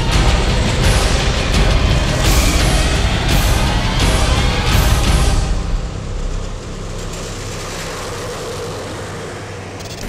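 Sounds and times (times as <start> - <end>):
tracked vehicle engine and tracks: 0.0 - 10.0.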